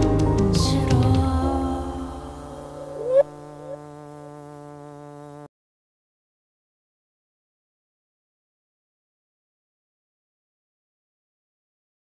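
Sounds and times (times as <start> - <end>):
buzzy synthesizer tone: 0.6 - 3.9
small electronic blips: 2.6 - 4.0.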